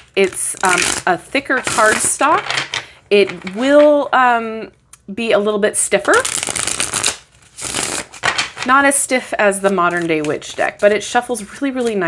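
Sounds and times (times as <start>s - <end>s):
cards being riffle-shuffled: 6.0s - 8.8s, 9.6s - 12.0s.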